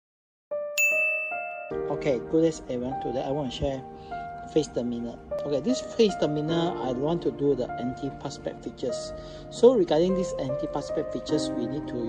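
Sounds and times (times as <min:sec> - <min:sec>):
background music: 0:00.6 - 0:12.0
bell-like chime jingle: 0:00.8 - 0:02.2
man's voice: 0:01.9 - 0:03.8, 0:04.5 - 0:12.0.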